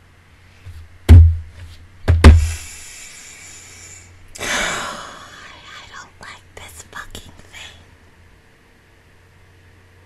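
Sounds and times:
person whispering: 4.9 - 7.9.

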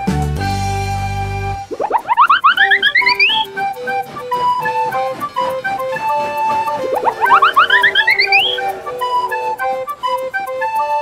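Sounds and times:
light background music: 0.0 - 11.0
short rising chirps: 1.6 - 4.8, 6.4 - 10.2
cartoon upward swoop: 1.7 - 3.5, 7.0 - 8.7.

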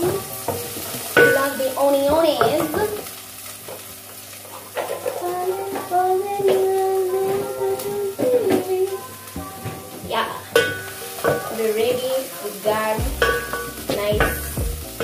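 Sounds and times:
onions sizzling in hot oil: 0.0 - 15.0
tune of long held notes: 5.2 - 15.0.

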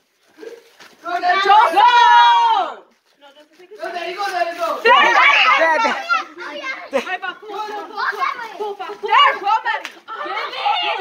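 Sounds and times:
children chattering: 3.3 - 11.0.

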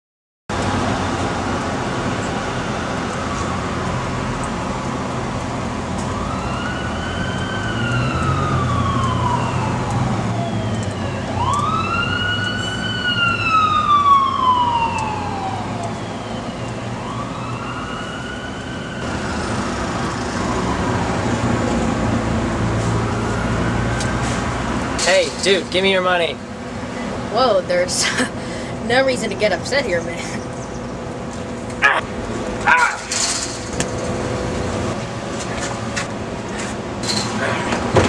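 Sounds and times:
siren wailing: 6.0 - 19.2, 20.2 - 24.3.

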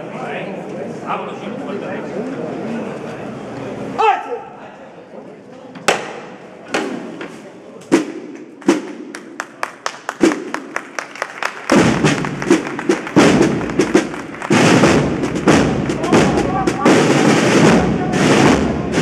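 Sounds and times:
snare drum rolls and beats: 7.9 - 19.0.

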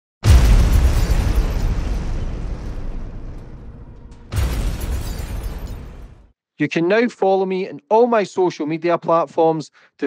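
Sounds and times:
explosion boom with deep rumble: 0.2 - 6.3.

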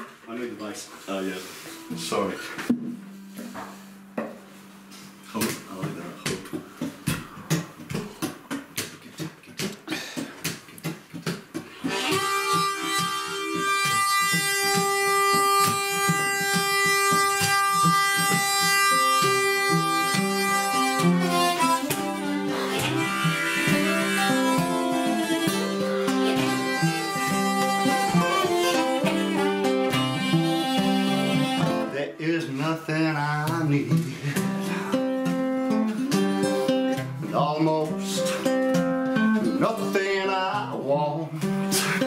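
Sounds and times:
acoustic guitars strumming: 1.0 - 42.0
harmonica chords: 1.1 - 7.5, 11.6 - 42.0.

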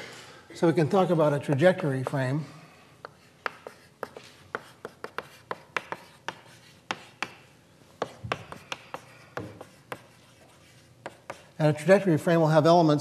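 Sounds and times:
chalk tapping on blackboard: 3.0 - 11.6.

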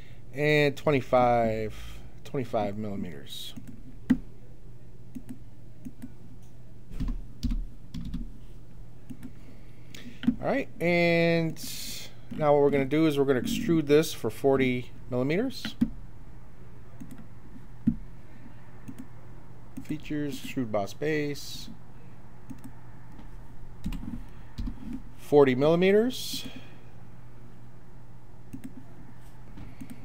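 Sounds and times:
low steady hum: 0.0 - 30.0
computer mouse clicks: 3.6 - 4.2, 5.1 - 8.2, 9.1 - 9.4, 17.0 - 18.0, 18.8 - 19.1, 22.5 - 25.0, 28.5 - 28.9, 29.8 - 30.0.

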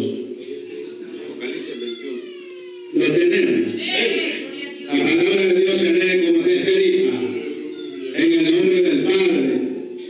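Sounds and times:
steady low hum: 0.0 - 10.0
child whining: 1.6 - 3.0, 7.2 - 8.2.

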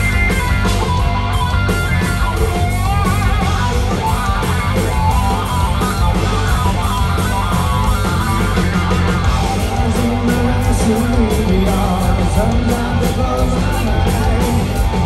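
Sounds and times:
live rock band playing: 0.0 - 15.0
wavering guitar line: 0.0 - 15.0.

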